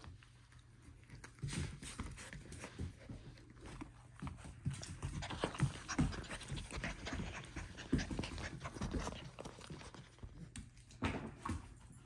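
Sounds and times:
paws scampering on tile floor: 0.0 - 12.0
puppy panting: 2.0 - 10.6.

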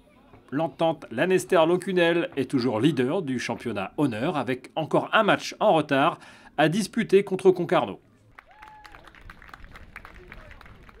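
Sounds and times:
scattered hand claps: 8.4 - 11.0.

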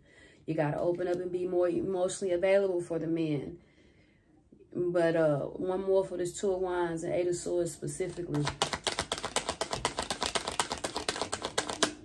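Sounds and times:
cards being shuffled: 8.3 - 12.0.

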